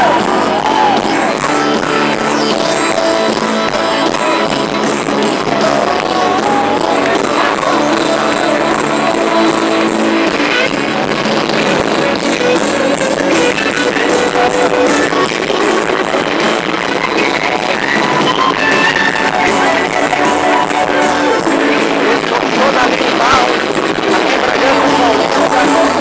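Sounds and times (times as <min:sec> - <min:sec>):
live band with guitars: 0:00.0 - 0:26.0.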